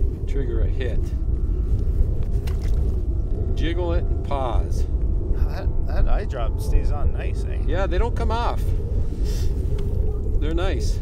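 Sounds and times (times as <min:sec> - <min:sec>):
wind buffeting microphone: 0:00.0 - 0:11.0
faint clicks: 0:09.7 - 0:10.4.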